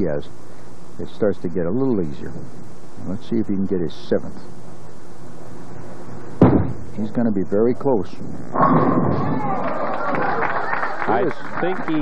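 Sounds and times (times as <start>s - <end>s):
bowling centre hum: 0.0s - 12.0s
bowling ball thud on wooden lane: 6.4s - 6.8s.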